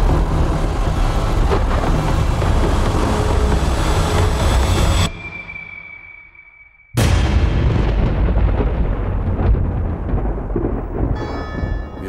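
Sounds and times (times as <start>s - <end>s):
ringing bell-like tone: 5.1s - 7.0s, 11.2s - 12.0s
deep booming rumble: 7.0s - 12.0s.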